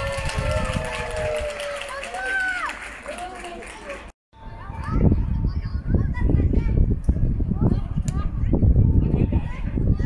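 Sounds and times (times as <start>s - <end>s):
wind rumble on microphone: 0.0s - 1.9s, 4.4s - 10.0s.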